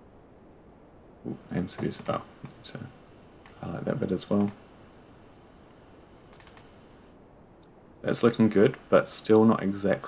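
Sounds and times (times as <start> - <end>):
faint room hiss: 0.0 - 10.0
computer clicks: 1.8 - 2.6, 3.4 - 3.7, 4.3 - 4.6, 6.3 - 6.8.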